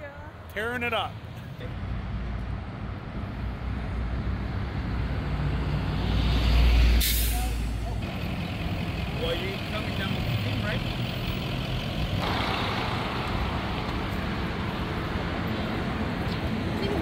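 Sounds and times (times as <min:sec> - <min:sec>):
road traffic: 0:00.0 - 0:17.0
heavy vehicle engine: 0:01.6 - 0:17.0
air brake hiss: 0:07.0 - 0:07.6.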